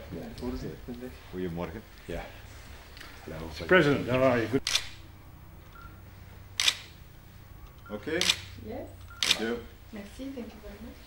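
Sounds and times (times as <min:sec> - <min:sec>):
low room hum: 0:00.0 - 0:11.0
camera shutter release: 0:04.6 - 0:05.0, 0:06.6 - 0:07.0, 0:07.7 - 0:09.6.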